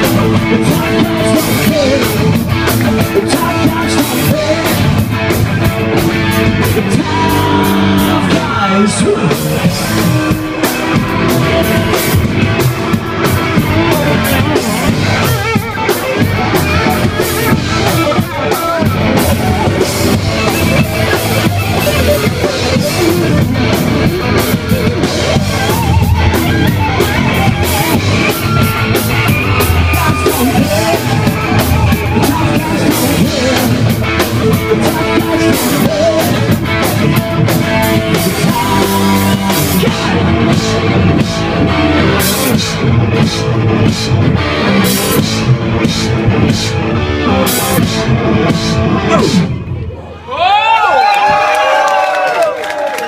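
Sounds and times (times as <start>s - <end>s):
live rock band playing: 0.0s - 50.3s.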